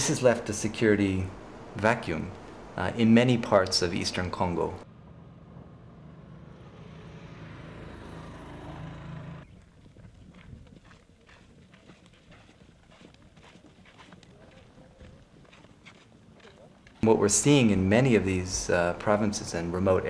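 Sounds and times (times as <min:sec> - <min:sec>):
military vehicle engines running: 0:04.1 - 0:10.0
footsteps on dirt road: 0:09.4 - 0:17.3.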